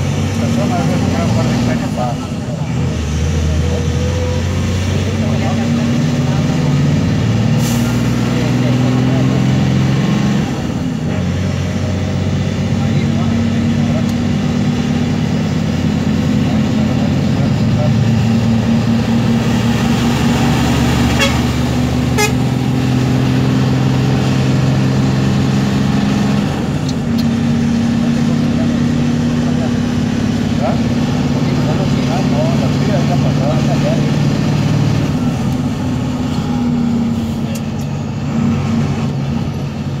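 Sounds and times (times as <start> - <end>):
road noise: 0.0 - 40.0
vehicle engine humming: 0.0 - 40.0.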